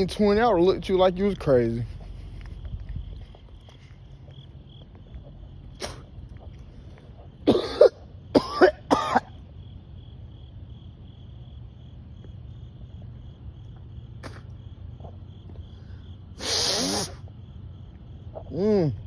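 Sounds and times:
crickets trilling: 0:00.0 - 0:19.0
man coughing: 0:07.4 - 0:09.4.

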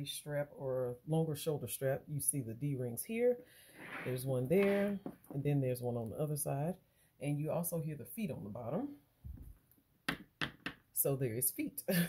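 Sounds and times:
sharp knocks on wooden table: 0:10.1 - 0:10.8.

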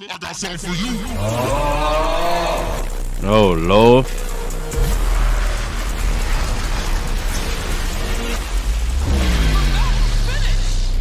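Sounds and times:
deep rumble: 0:00.6 - 0:11.0
energy beam blast: 0:00.7 - 0:11.0.

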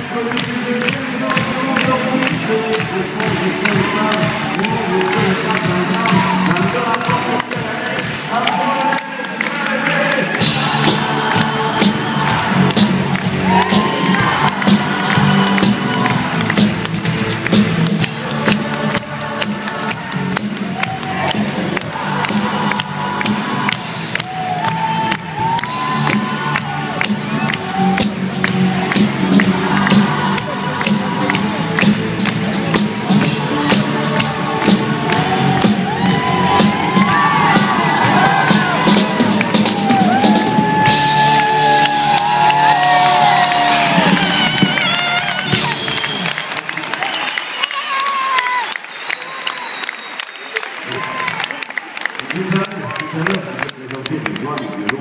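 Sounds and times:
live band playing loud music: 0:00.0 - 0:47.0
crowd cheering: 0:00.0 - 0:55.0.

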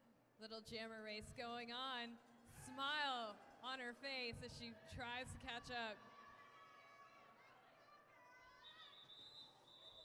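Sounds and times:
faint arena background: 0:00.0 - 0:10.0.

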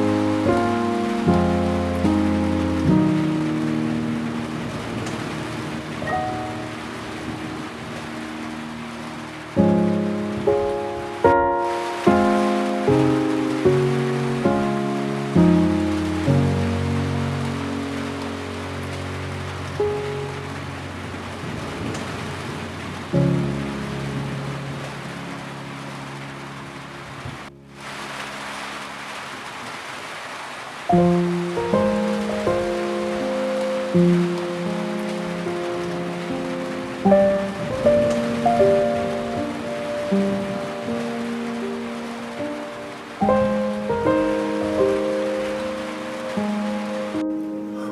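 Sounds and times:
calm slow piano music: 0:00.0 - 0:47.9
steady soft rain: 0:00.0 - 0:47.9.

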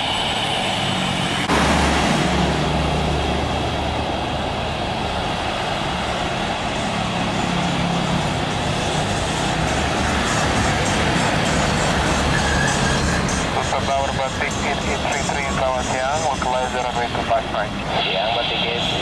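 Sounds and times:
jet engine rumble: 0:00.0 - 0:12.2.

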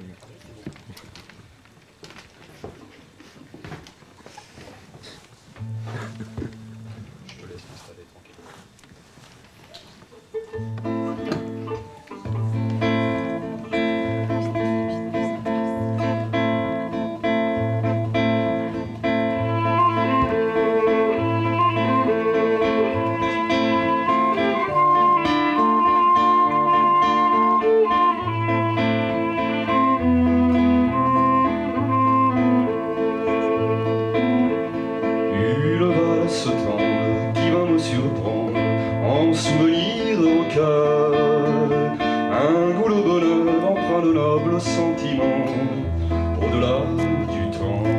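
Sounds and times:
classical guitar accompaniment: 0:05.6 - 0:07.7, 0:09.6 - 0:47.9
violin melody: 0:11.5 - 0:38.1.

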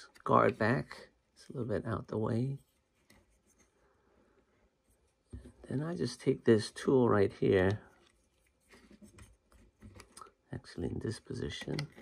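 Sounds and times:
hands handling plastic part: 0:07.4 - 0:10.4, 0:11.3 - 0:12.0.

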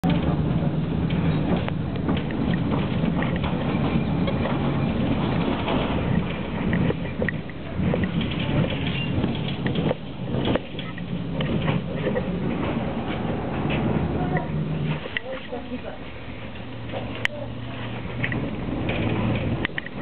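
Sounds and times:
track clicks and knocks: 0:00.0 - 0:20.0
tram motors and wheels rumbling: 0:00.0 - 0:20.0.

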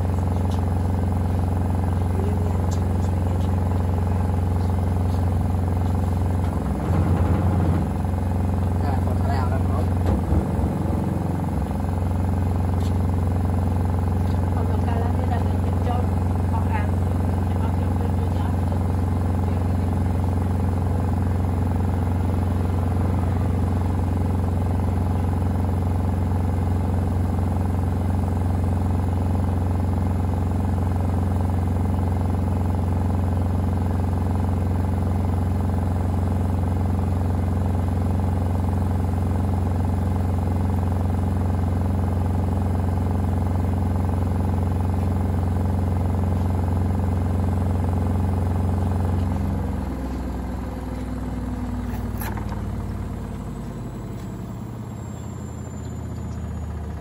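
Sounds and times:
washing machine spinning: 0:00.0 - 0:57.0.

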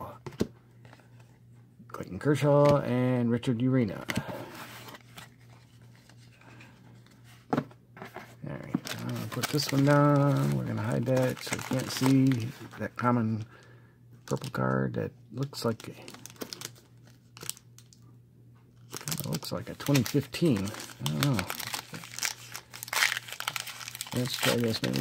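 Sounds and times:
low steady hum: 0:00.0 - 0:25.0
foil wrapper crinkling: 0:08.8 - 0:12.8, 0:15.5 - 0:18.0, 0:18.8 - 0:25.0
cards rubbing and ticking: 0:19.0 - 0:25.0.

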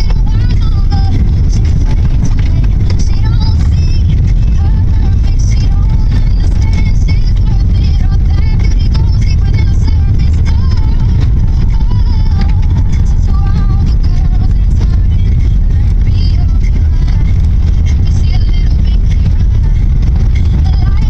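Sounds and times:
car rumble from inside cabin: 0:00.0 - 0:21.0.

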